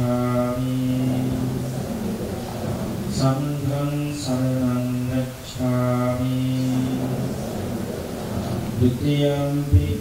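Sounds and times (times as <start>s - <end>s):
man chanting into a microphone: 0.0s - 1.8s, 3.0s - 7.5s, 8.6s - 10.0s.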